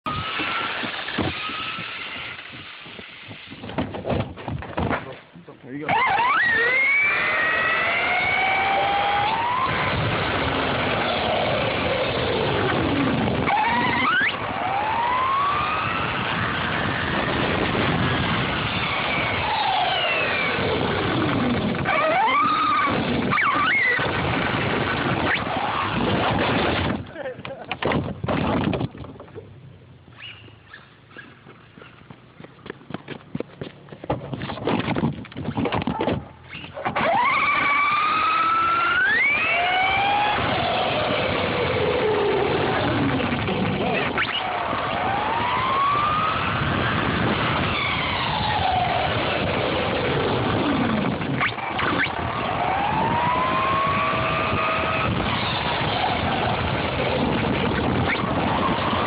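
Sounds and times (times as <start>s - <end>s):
electric motor whining: 0.1s - 3.7s, 5.9s - 27.0s, 36.6s - 59.0s
tyres rushing on road: 0.1s - 27.8s, 36.2s - 59.0s.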